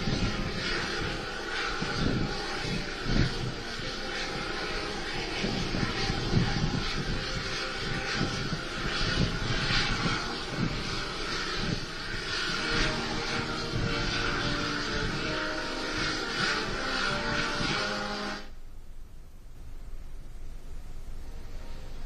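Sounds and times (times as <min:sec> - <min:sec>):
wind rushing with low gusts: 0:00.0 - 0:22.0.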